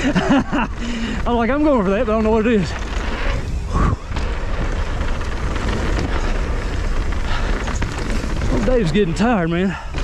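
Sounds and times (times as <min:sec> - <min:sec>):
bike rolling on dirt trail: 0:00.0 - 0:10.0
wind buffeting microphone: 0:00.0 - 0:10.0.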